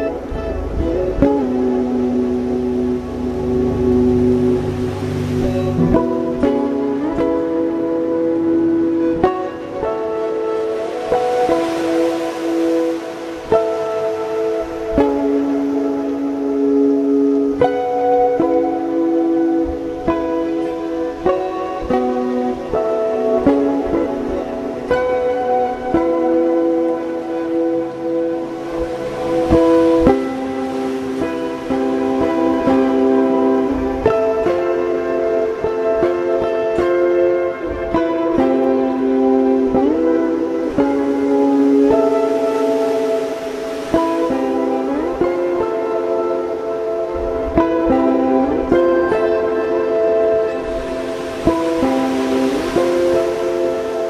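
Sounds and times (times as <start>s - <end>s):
solo guitar melody: 0.0s - 54.0s.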